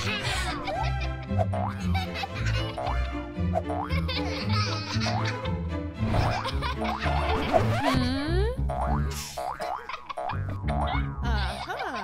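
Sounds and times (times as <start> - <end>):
upbeat background music: 0.0 - 12.0
cartoon boing sound effects: 7.3 - 11.4.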